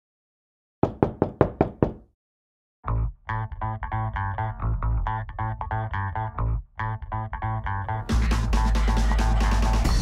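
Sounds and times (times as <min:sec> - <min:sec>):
sharp knocks: 0:00.8 - 0:02.1.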